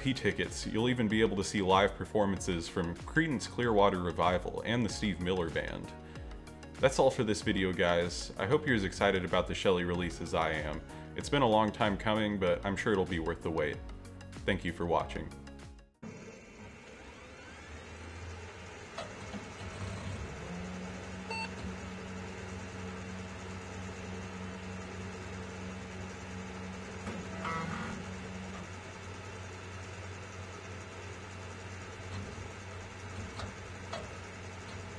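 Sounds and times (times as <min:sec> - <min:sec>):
low steady hum: 0:19.0 - 0:34.9.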